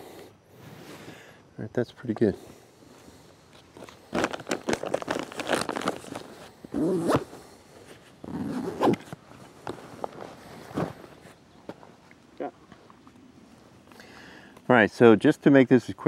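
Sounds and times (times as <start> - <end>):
fabric rustling: 3.8 - 11.4
backpack zipper pulled open: 4.1 - 7.5, 8.2 - 9.2.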